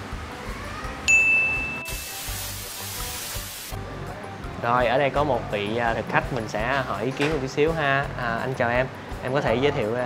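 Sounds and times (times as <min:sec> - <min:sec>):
bright chime ding: 0:01.1 - 0:02.0
steady hiss: 0:01.9 - 0:03.8.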